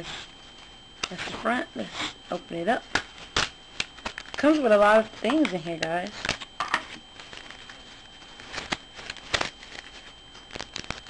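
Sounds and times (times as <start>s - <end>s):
plastic packaging rustling: 3.1s - 11.0s.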